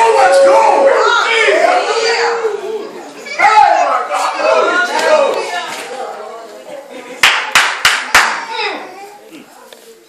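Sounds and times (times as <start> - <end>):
sharp hand claps: 7.2 - 8.4.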